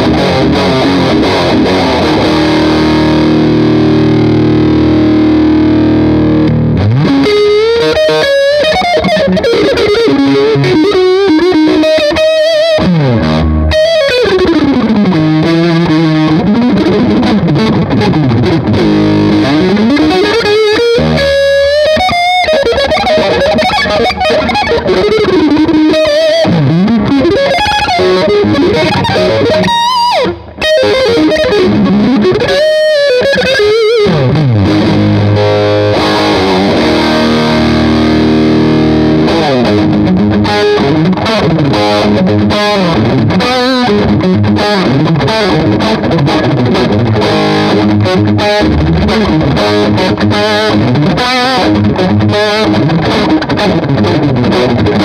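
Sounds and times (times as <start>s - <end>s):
distorted electric guitar riff: 0.0s - 55.0s.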